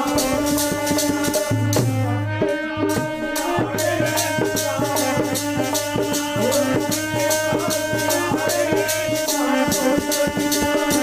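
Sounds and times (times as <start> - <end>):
harmonium chords: 0.0 - 11.0.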